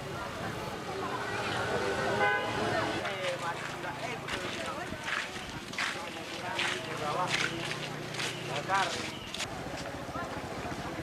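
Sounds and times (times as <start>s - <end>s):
voices calling outdoors: 0.0s - 11.0s.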